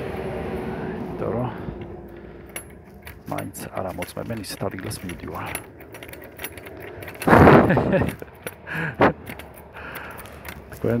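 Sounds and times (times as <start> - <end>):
metal seal clicking and jingling: 1.8 - 11.0
person speaking: 3.2 - 5.8.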